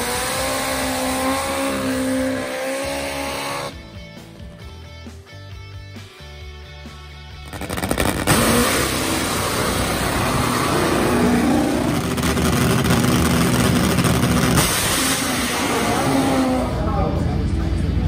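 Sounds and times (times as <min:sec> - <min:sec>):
loud drag motorcycle engine: 0:00.0 - 0:03.8, 0:07.4 - 0:18.0.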